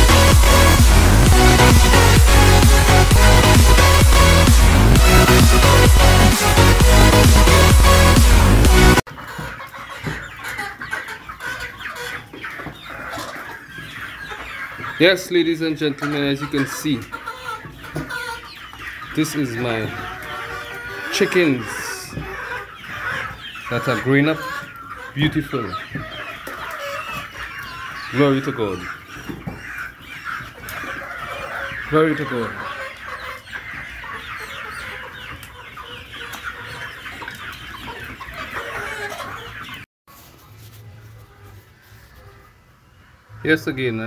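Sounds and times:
hens clucking and calling: 0.0 - 44.0.

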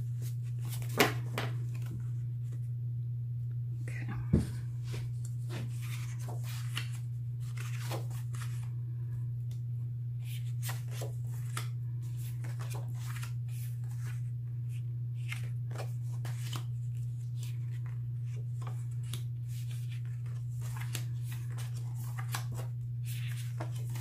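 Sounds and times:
steady low hum: 0.0 - 24.0
paper cards rustling: 0.1 - 2.6, 4.9 - 8.8, 10.2 - 24.0.

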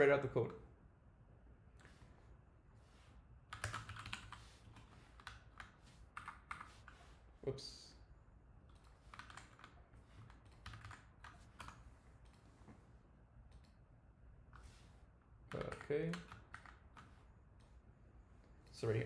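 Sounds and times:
computer keyboard clicks: 3.5 - 6.7, 8.7 - 12.4, 15.5 - 17.1.

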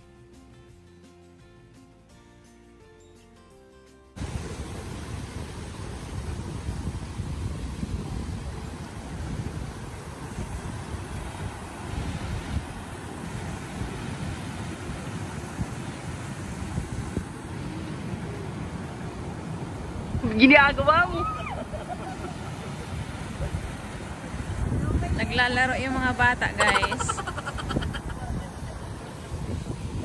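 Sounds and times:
water rushing over rocks: 4.2 - 30.0
wind buffeting microphone: 4.2 - 30.0.

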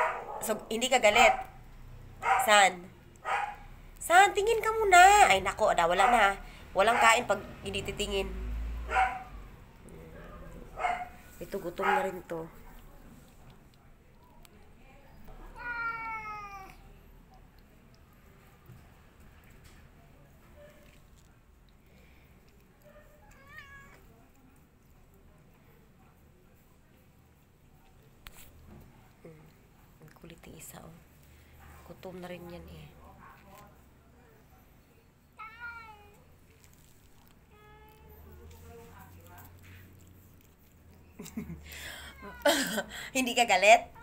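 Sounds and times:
cat meowing: 15.4 - 16.9, 23.2 - 24.1, 35.4 - 36.2.

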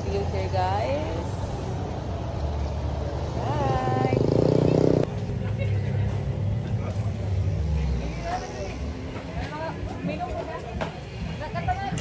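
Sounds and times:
faint background chatter: 0.0 - 12.0
road traffic: 0.0 - 12.0.

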